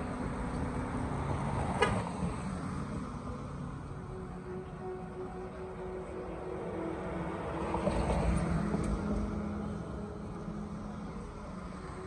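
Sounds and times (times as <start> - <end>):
car passing by: 0.0 - 12.0.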